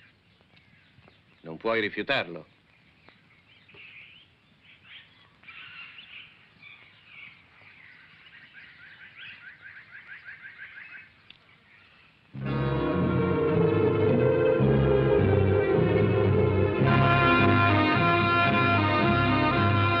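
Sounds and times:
bird calls and chirps: 0:00.0 - 0:12.3
loud music with low tones: 0:12.4 - 0:20.0.

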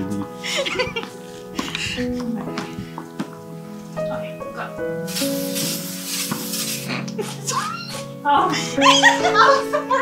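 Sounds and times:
background music: 0:00.0 - 0:10.0
spray hissing: 0:05.0 - 0:07.4.

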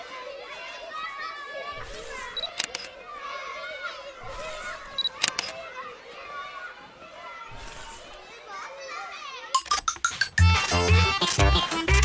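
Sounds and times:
children chattering faintly: 0:00.0 - 0:09.8.

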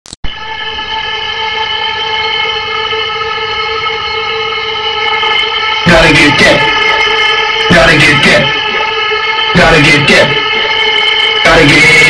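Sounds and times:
buzzy horn-like tone: 0:00.3 - 0:12.0.

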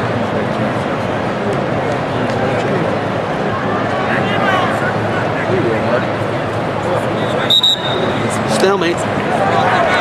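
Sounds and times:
gym crowd noise: 0:00.0 - 0:10.0
referee whistle blast: 0:07.3 - 0:08.2.

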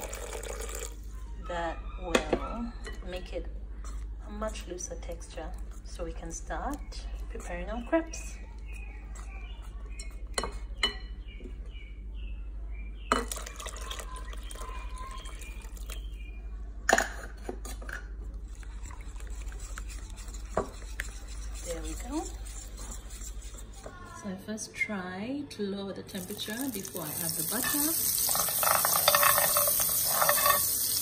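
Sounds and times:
whisk stirring batter: 0:18.3 - 0:24.4, 0:27.2 - 0:31.0
whisk clinking against bowl: 0:18.9 - 0:24.1, 0:27.2 - 0:31.0.

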